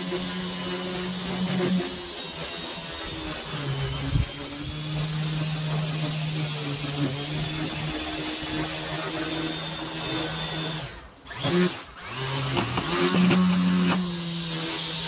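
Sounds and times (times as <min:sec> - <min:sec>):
string trimmer cutting grass: 0:00.0 - 0:15.0.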